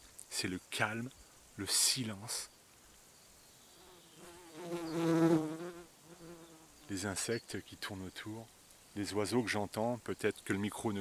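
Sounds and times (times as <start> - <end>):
flying insect buzzing: 3.6 - 6.9.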